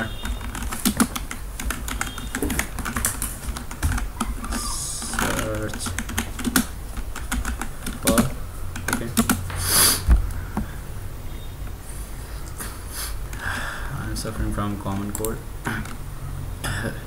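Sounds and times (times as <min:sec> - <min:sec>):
computer keyboard typing: 0:00.0 - 0:09.5, 0:14.9 - 0:16.0.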